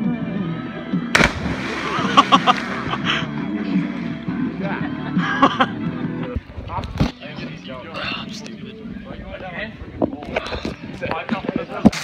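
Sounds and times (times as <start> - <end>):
loud splash into water: 1.1 - 3.4.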